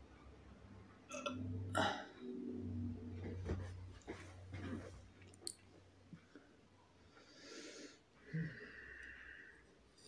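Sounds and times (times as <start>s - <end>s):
man belching: 1.1s - 2.2s.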